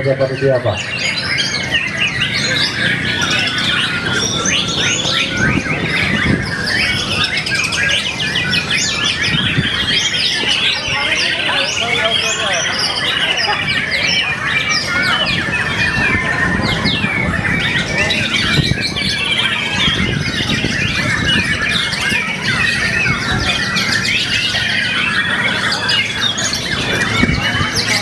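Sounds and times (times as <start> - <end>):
birds singing whistles and trills: 0.0 - 28.0
crowd noise: 0.0 - 28.0.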